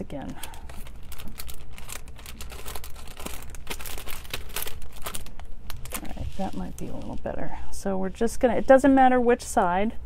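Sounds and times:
plastic wrap crinkling: 0:00.0 - 0:07.5.

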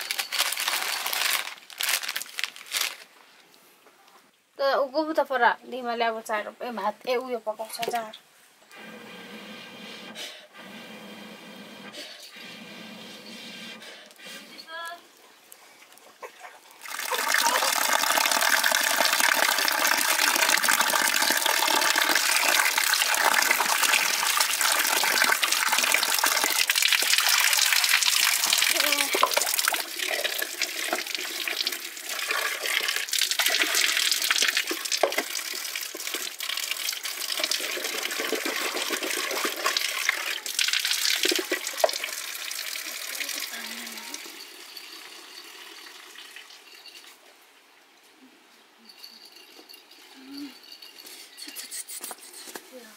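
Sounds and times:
water pouring onto concrete basin: 0:16.8 - 0:46.8
potatoes rinsed in steel bowl: 0:16.8 - 0:47.0.

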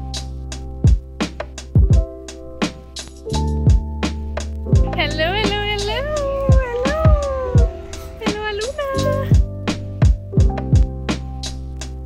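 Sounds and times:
background music with beat: 0:00.0 - 0:12.0
person cooing high-pitched: 0:05.8 - 0:09.4.

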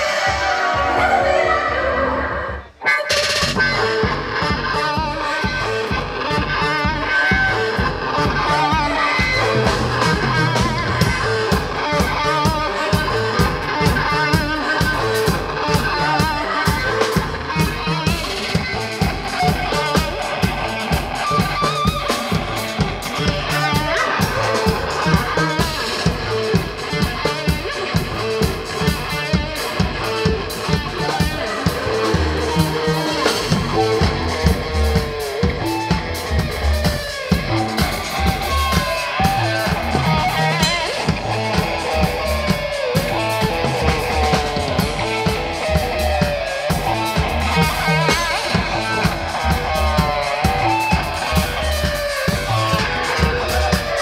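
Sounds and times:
electric guitar: 0:00.0 - 0:54.0
fast drum beat: 0:00.0 - 0:54.0
live rock band playing: 0:00.0 - 0:54.0.

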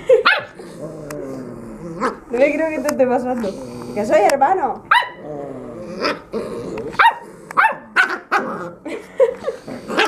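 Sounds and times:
puppies growling: 0:00.0 - 0:04.5, 0:05.1 - 0:10.0
puppy yip: 0:04.9 - 0:05.2.

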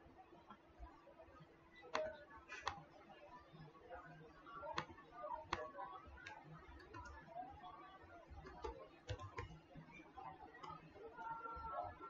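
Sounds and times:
computer mouse clicks: 0:01.9 - 0:02.8, 0:04.7 - 0:07.2, 0:08.3 - 0:09.6.

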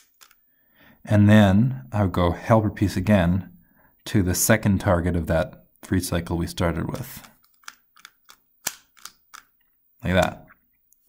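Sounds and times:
plastic puzzle cube clacks: 0:00.0 - 0:00.4, 0:06.9 - 0:09.7.

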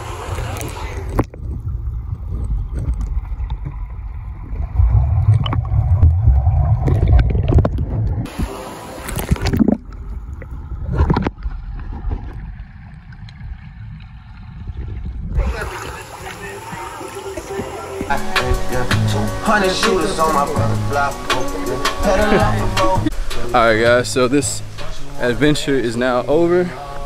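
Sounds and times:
muffled underwater water rumble: 0:00.0 - 0:19.3
water splashing: 0:00.0 - 0:27.0
bubbling clicks: 0:00.3 - 0:08.4, 0:09.0 - 0:17.8.

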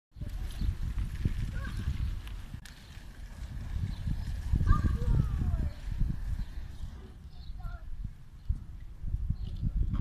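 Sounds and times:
low rumbling on microphone: 0:00.2 - 0:10.0.

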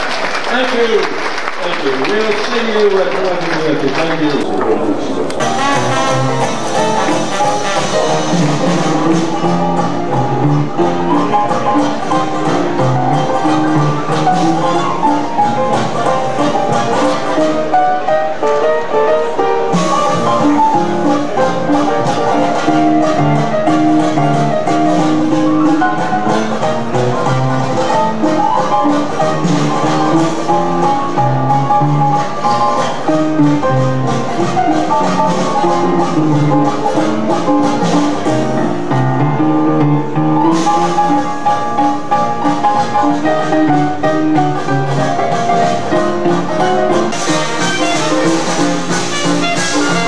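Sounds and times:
jazz band playing: 0:04.8 - 0:50.0.

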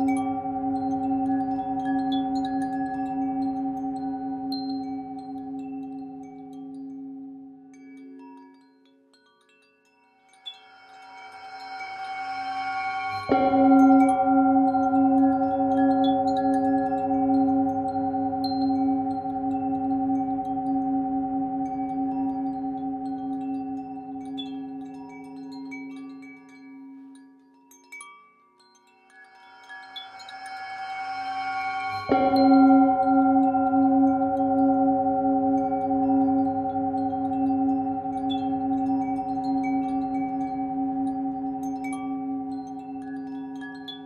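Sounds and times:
singing bowl ringing: 0:00.0 - 0:08.3, 0:10.3 - 0:27.1, 0:29.0 - 0:44.0
wind chimes tinkling: 0:00.0 - 0:44.0.

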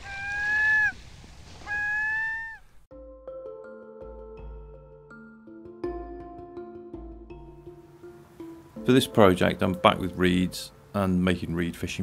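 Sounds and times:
long pitched calls: 0:00.0 - 0:01.0, 0:01.6 - 0:02.8
music with held notes: 0:02.9 - 0:11.1.

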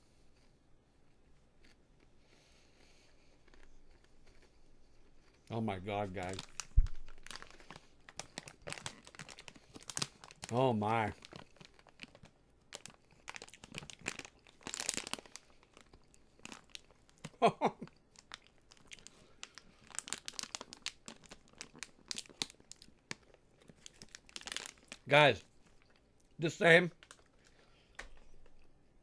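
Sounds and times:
popcorn crunching: 0:03.1 - 0:28.7.

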